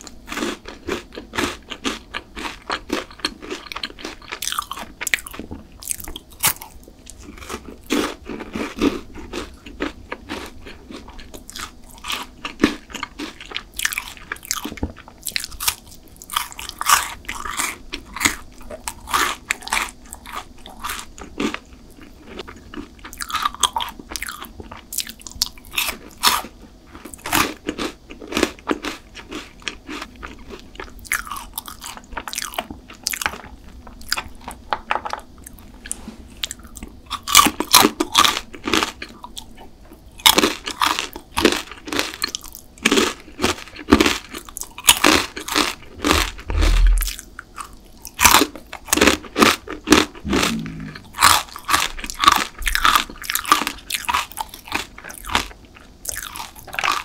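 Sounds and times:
crunching chocolate snacks: 0:00.0 - 0:35.7, 0:36.4 - 0:57.0
soft chewing: 0:00.0 - 0:57.0.

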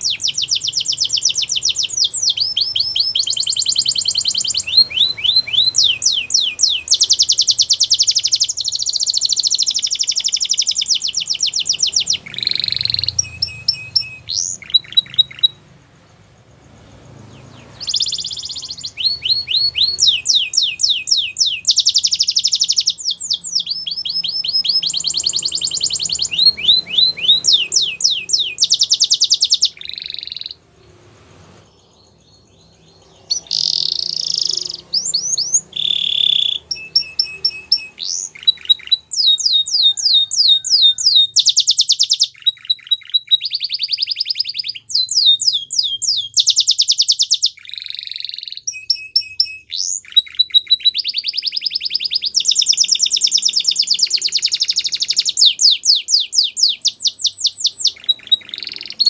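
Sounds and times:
canary singing: 0:00.0 - 0:59.0.

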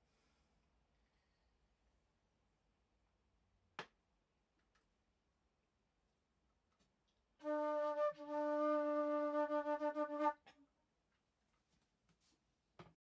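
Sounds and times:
alto flute low note: 0:07.4 - 0:10.6.

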